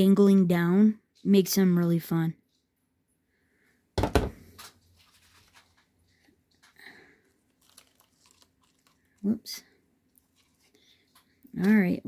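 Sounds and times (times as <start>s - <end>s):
loud knock and rustle: 4.0s - 4.4s
paper and plastic crinkling: 4.4s - 12.0s.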